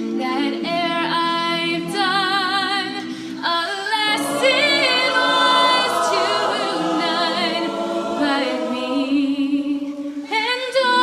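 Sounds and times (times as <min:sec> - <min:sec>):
a cappella group singing: 0:03.6 - 0:11.0.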